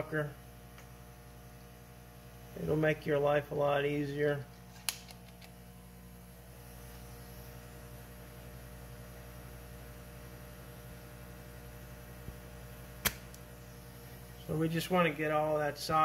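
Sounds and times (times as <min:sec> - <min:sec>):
electrical hum: 0:00.0 - 0:16.0
solder sucker click: 0:13.0 - 0:13.5.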